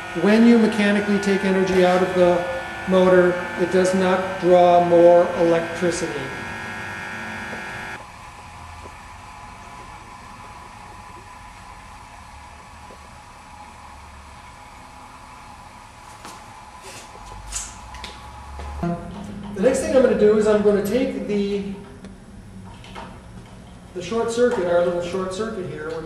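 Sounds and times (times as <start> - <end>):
motor electrical hum: 0.0 - 26.0
low rumble: 18.8 - 23.4.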